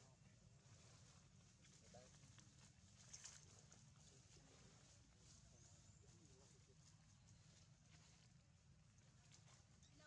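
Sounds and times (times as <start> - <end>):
faint outdoor hum: 0.0 - 10.0
soft crackle: 0.6 - 10.0.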